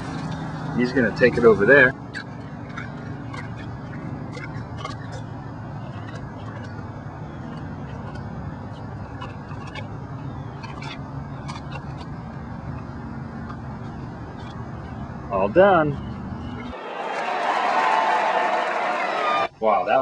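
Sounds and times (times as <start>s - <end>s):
tiger eating: 0.0s - 15.3s
low engine hum: 0.0s - 16.8s.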